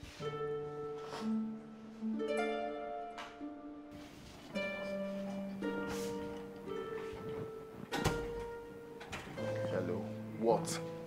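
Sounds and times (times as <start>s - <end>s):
plucked string film music: 0.0s - 11.0s.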